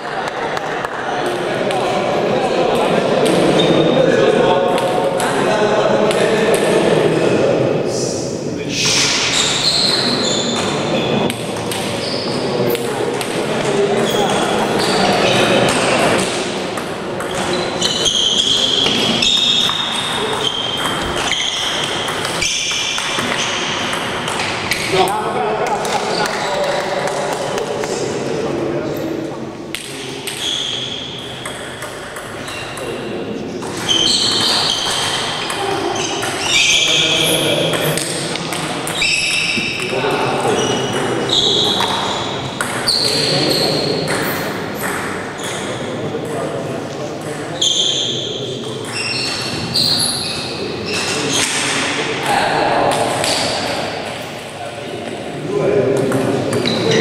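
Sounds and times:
people talking: 0.0 - 57.0.

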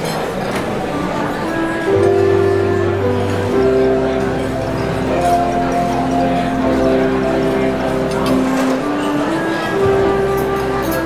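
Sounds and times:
electronic keyboard melody: 0.4 - 11.0.

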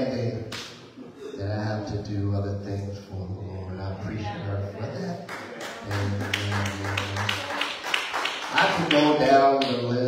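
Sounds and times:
man's amplified voice: 0.0 - 0.5, 1.3 - 7.3, 8.5 - 10.0
rhythmic hand claps: 5.2 - 10.0.

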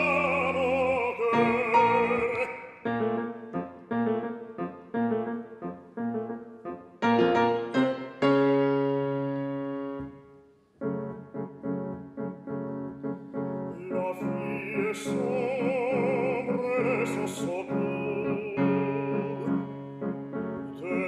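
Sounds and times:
piano chords: 0.0 - 21.0.

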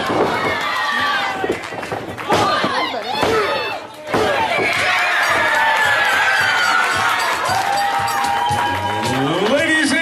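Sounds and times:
crowd yelling and shouting: 0.0 - 10.0.

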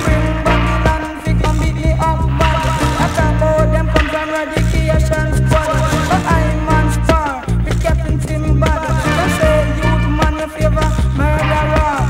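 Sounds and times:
reggae music: 0.0 - 12.0.

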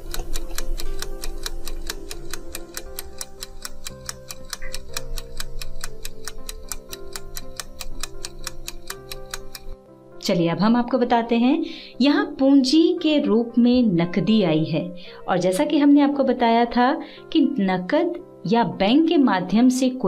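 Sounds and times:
clock ticking fast: 0.0 - 9.8
soft sustained music: 0.0 - 20.0.

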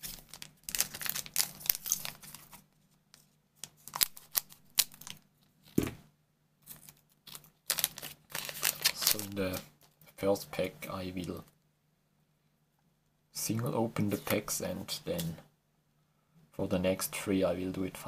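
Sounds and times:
foil pack crinkling: 0.0 - 2.6, 6.7 - 9.6.

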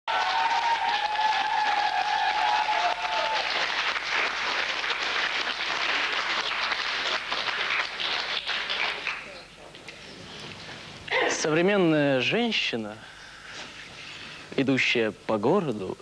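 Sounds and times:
studio audience applauding: 0.0 - 9.5.

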